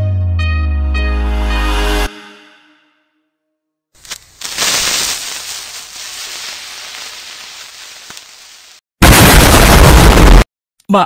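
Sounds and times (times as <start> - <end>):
sizzling hiss: 4.0 - 8.8.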